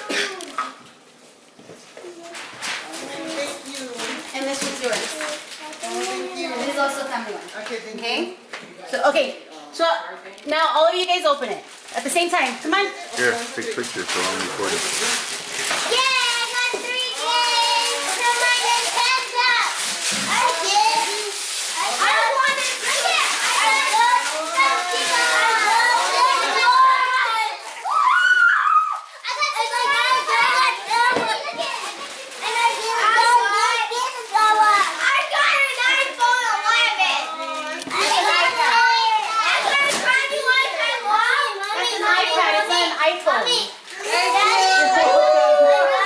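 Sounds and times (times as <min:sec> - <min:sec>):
wrapping paper rustling and tearing: 0:02.0 - 0:07.9, 0:11.2 - 0:46.0
children squealing and exclaiming: 0:15.9 - 0:42.8, 0:43.5 - 0:46.0.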